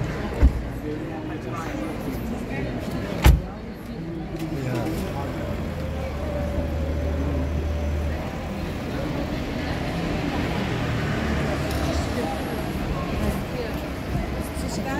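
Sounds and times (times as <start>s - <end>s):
street noise: 0.0s - 14.9s
car door slamming: 3.2s - 3.5s.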